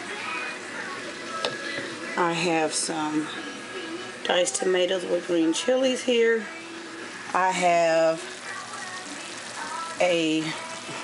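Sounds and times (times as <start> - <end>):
food sizzling in a pot: 0.0 - 11.0.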